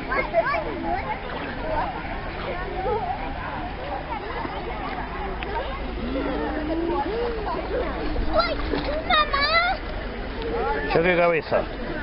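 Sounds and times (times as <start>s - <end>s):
pool water splashing: 0.0s - 12.0s.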